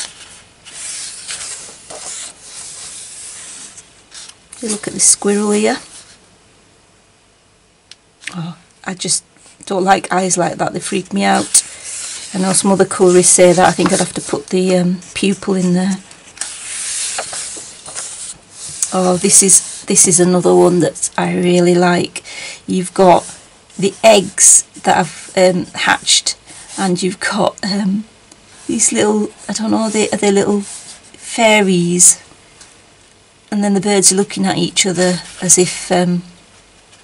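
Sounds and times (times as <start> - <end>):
paper swishes: 0.0 - 4.9, 16.2 - 19.9
paper pages rustling: 0.0 - 5.0, 11.3 - 14.5, 15.2 - 19.6.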